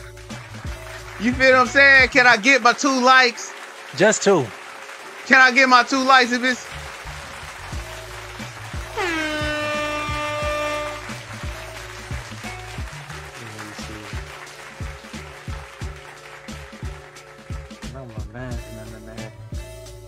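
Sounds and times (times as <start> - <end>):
music with repeating bass line: 0.0 - 2.4, 6.6 - 20.0
horn-like note sliding down: 9.0 - 11.2.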